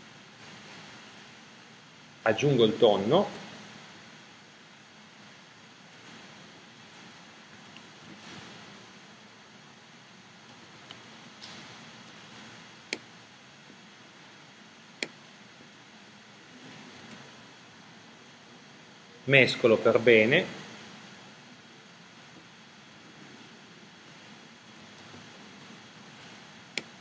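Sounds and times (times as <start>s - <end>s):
faint room hiss: 0.0s - 27.0s.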